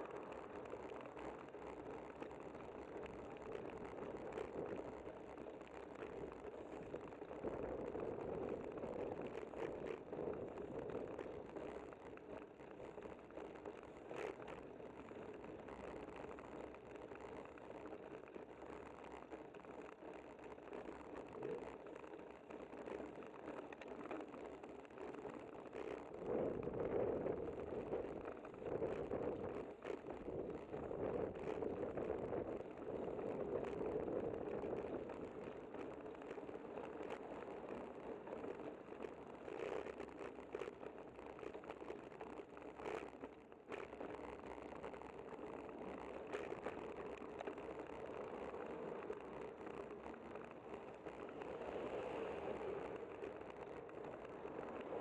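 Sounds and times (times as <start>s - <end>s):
bicycle tyres on concrete: 0.0s - 55.0s.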